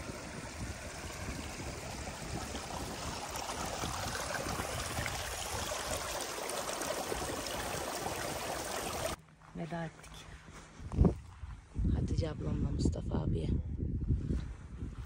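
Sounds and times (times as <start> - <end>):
mountain stream rushing: 0.0 - 9.2.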